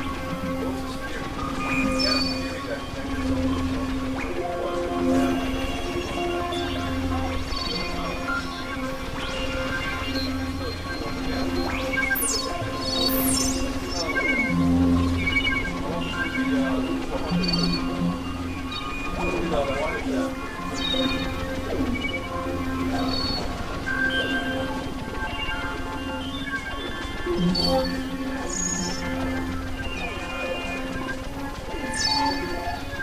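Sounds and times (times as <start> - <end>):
downward sliding synth pitches: 0.0 - 33.0
low synthesizer drone: 0.0 - 33.0.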